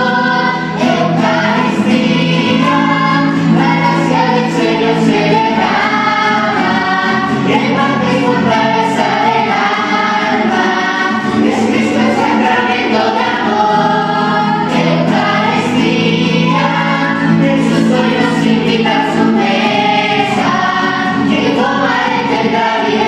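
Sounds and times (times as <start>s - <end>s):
acoustic guitar: 0.0s - 23.0s
children's choir singing a hymn: 0.0s - 23.0s.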